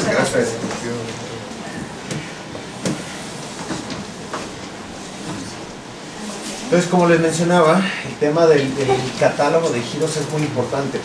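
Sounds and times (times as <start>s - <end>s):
steady room rumble: 0.0s - 11.0s.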